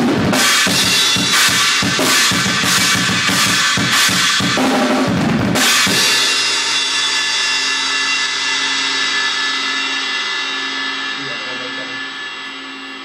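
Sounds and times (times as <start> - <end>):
cymbals ringing: 5.9 - 13.0.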